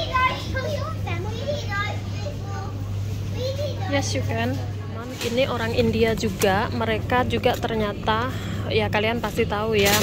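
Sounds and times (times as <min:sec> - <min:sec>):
children talking: 0:00.0 - 0:08.2
steady low hum: 0:00.0 - 0:10.0.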